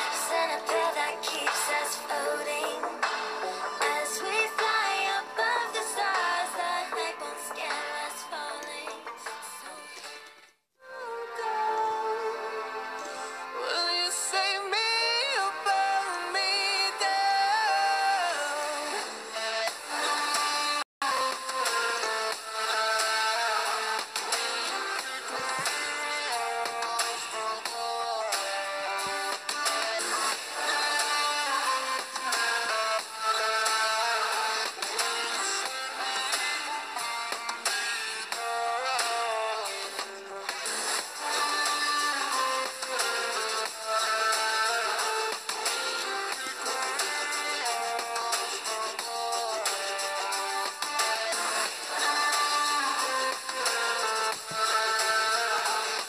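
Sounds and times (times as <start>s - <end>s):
song with processed melodic line: 0.0s - 56.0s.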